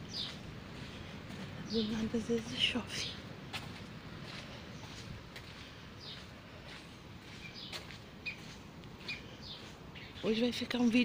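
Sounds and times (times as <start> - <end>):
birds chirping: 0.0 - 11.0
faint outdoor background noise: 0.0 - 11.0
footsteps on stone path: 0.0 - 11.0.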